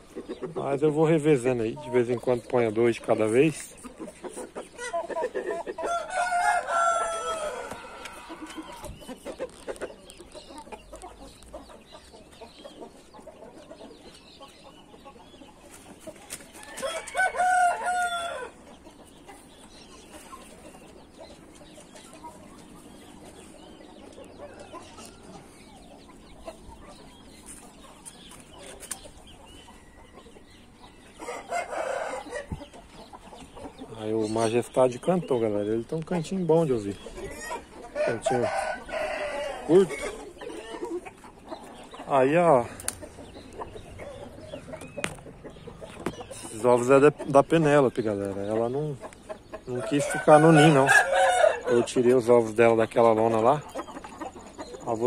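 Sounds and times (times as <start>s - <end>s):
rooster crowing: 5.9s - 8.8s, 16.8s - 18.6s, 49.8s - 51.9s.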